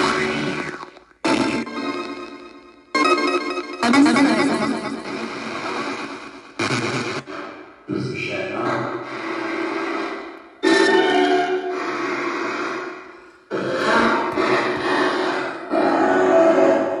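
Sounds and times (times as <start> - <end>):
chopped radio sound and music: 0.0 - 15.7.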